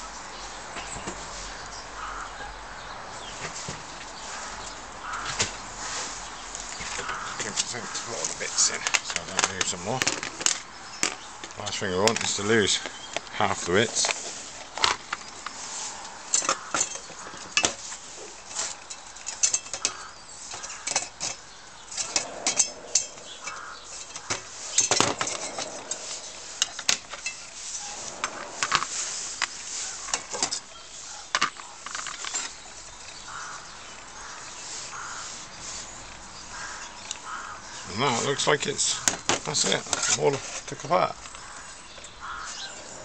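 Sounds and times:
metal parts clinking and scraping: 16.3 - 33.2.

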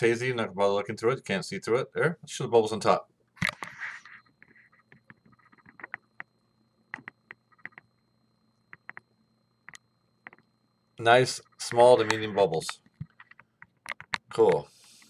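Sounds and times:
camera handling rustle: 3.4 - 4.3
faint clicks and taps: 3.4 - 6.3, 6.9 - 8.0, 8.6 - 10.5, 12.0 - 15.0.

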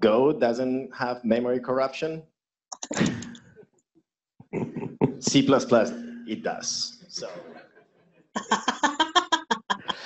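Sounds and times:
man talking: 0.0 - 2.2, 3.0 - 3.4, 4.6 - 7.6.

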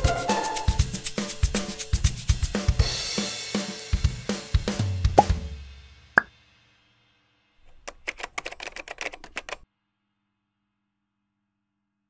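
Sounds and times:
drum-backed outro music: 0.0 - 6.2
quick run of clicks: 7.6 - 9.6.

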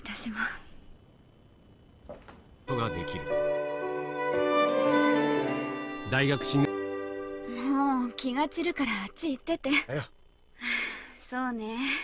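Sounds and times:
woman whispering: 0.0 - 0.7.

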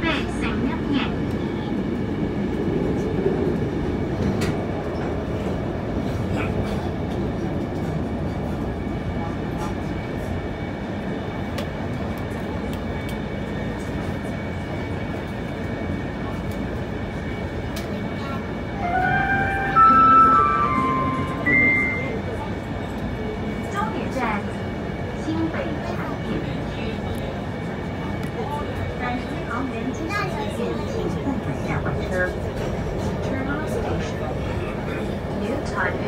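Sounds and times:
train wheels rumbling on rail: 0.0 - 18.8, 22.0 - 36.0.

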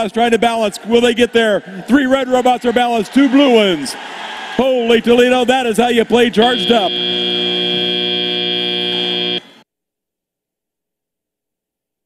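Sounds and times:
buzzer tone: 6.4 - 9.6.

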